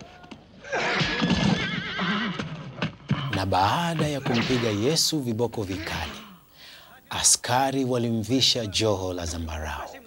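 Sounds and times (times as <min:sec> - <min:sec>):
horses whinnying: 0:00.6 - 0:03.4.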